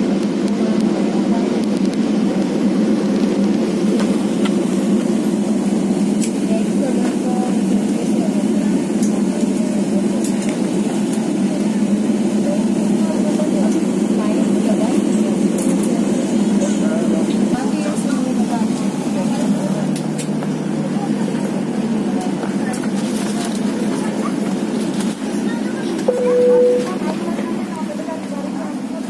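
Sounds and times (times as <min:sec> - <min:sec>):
airliner cabin hum: 0:00.0 - 0:29.0
indistinct voices: 0:25.3 - 0:29.0.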